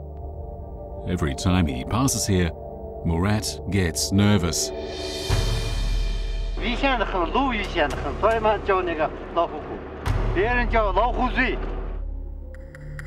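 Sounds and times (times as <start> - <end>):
background music with drone: 0.0 - 13.0
person talking: 1.0 - 4.7.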